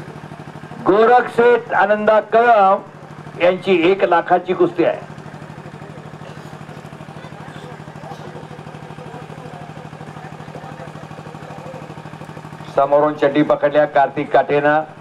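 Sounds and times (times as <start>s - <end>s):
low pulsing engine-like hum: 0.0s - 15.0s
faint distant voices: 5.1s - 13.0s.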